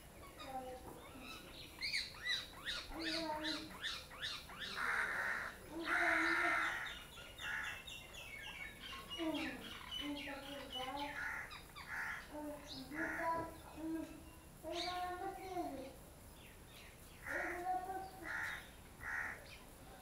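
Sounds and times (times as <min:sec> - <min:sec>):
small birds chirping: 0:00.0 - 0:20.0
crows cawing: 0:04.4 - 0:07.9, 0:11.0 - 0:13.6, 0:17.2 - 0:19.5.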